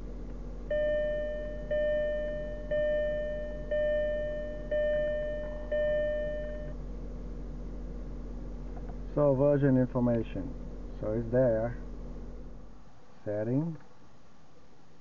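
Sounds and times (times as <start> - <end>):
car warning chime: 0.7 - 6.8.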